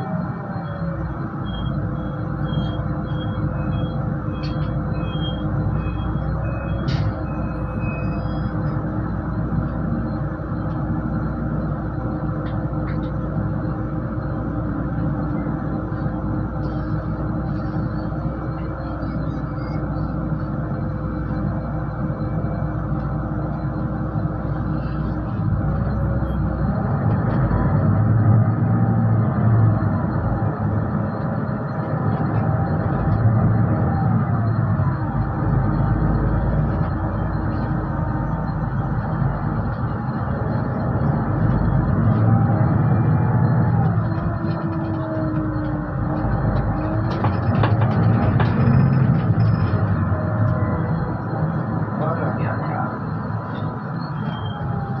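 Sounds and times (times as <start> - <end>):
bus engine and road rumble: 0.0 - 55.0
drivetrain whine: 0.0 - 55.0.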